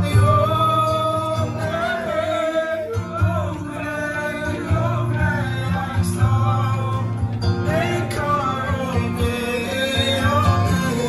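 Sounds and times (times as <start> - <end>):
men singing together: 0.0 - 11.0.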